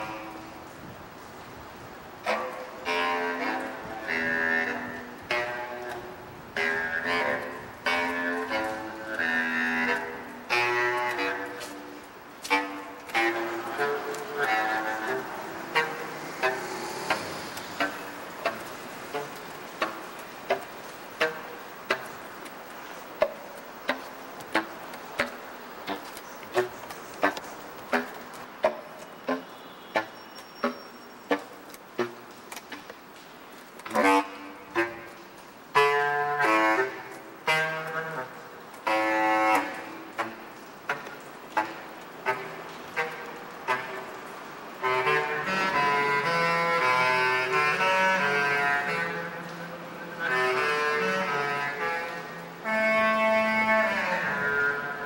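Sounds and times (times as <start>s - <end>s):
steady hiss: 0.0s - 55.0s
bass clarinet notes: 2.2s - 32.8s, 33.8s - 55.0s.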